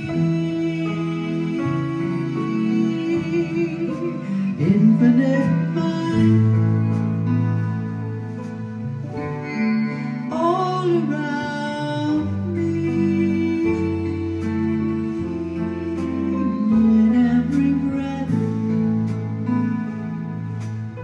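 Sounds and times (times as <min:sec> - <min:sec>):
person singing: 0:00.0 - 0:07.9, 0:09.5 - 0:21.0
guitar chords: 0:00.0 - 0:21.0.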